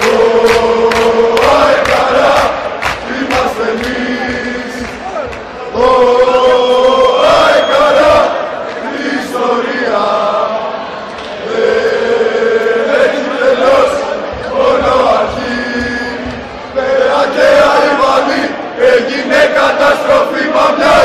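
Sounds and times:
male voices chanting in unison: 0.0 - 21.0.

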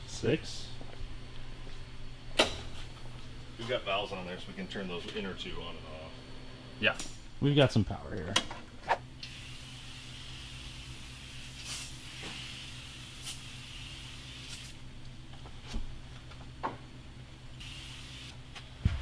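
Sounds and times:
steady low hum: 0.0 - 19.0
aerosol spray hissing: 9.3 - 14.8, 17.6 - 18.4.

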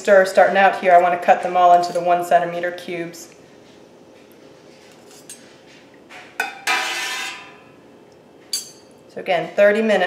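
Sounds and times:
metal utensils scraping a pot: 6.4 - 7.6.

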